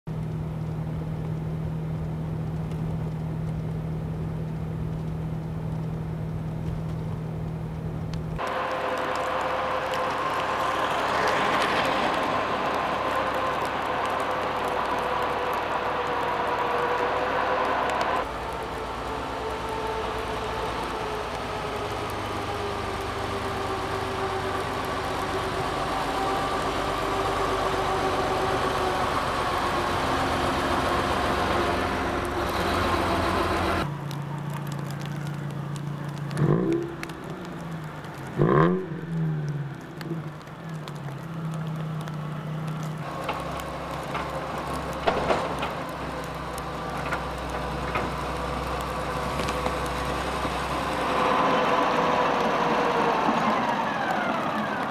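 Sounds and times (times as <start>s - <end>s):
car engine hum from inside: 0.1s - 54.9s
snowplough engine working: 0.1s - 54.9s.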